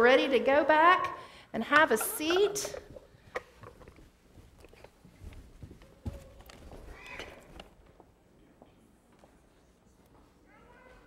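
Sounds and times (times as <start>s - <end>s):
children's footsteps and shuffling: 2.0s - 11.0s.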